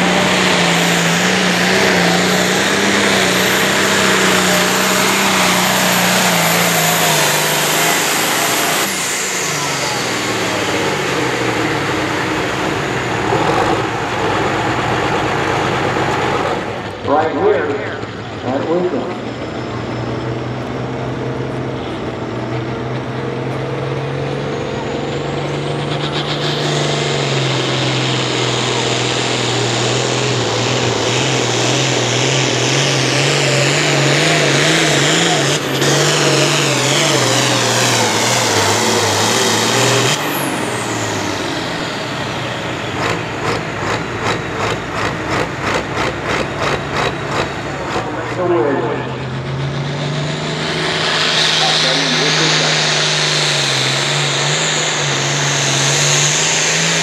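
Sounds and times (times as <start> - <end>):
diesel tractor engine revving: 0.0 - 57.0.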